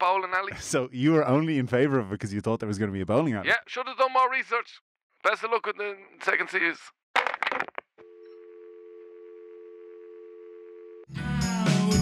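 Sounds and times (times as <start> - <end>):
phone line click: 8.0 - 11.0
two-tone telephone dial tone: 8.0 - 11.1.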